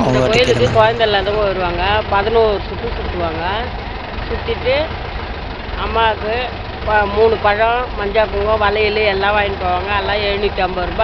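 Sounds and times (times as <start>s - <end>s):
woman talking: 0.0s - 3.7s.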